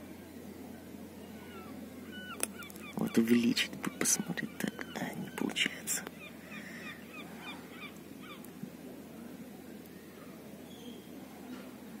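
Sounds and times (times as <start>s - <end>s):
distant bird calls: 0.0s - 11.8s.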